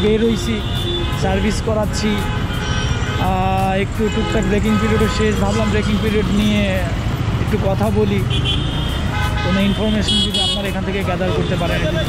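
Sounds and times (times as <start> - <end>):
motorcycle engine and road rumble: 0.0 - 12.0
vehicle horn toots: 0.4 - 1.6, 2.2 - 3.4, 4.0 - 6.5, 8.3 - 10.7.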